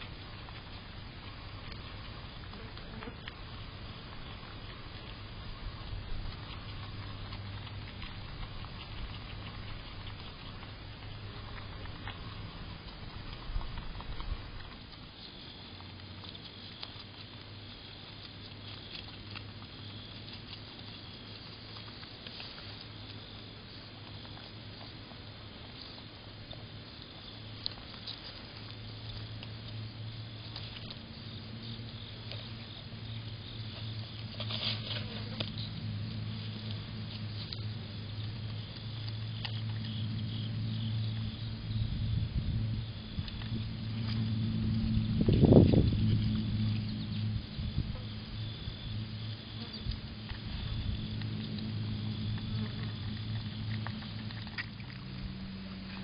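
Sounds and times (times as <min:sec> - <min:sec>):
animal chewing with faint clicks: 0:00.0 - 0:56.0
steady low hum: 0:00.0 - 0:56.0
rumbling against microphone: 0:27.3 - 0:56.0.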